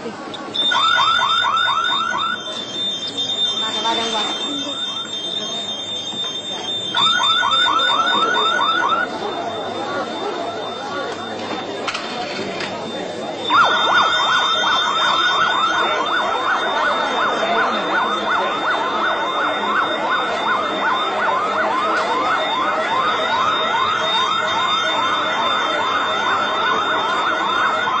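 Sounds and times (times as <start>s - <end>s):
steady high tone: 0.3s - 28.0s
electronic alarm whooping: 0.4s - 28.0s.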